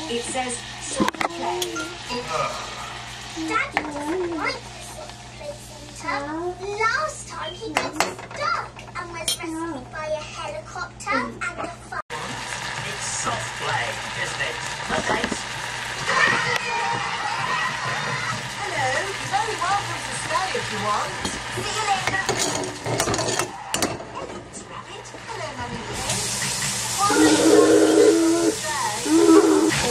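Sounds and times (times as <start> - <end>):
butter sizzling: 0.0 - 10.8, 12.1 - 29.9
children's voices: 26.9 - 29.8.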